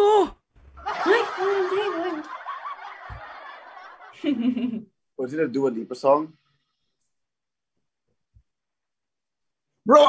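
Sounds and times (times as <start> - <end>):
people laughing: 0.8 - 4.9.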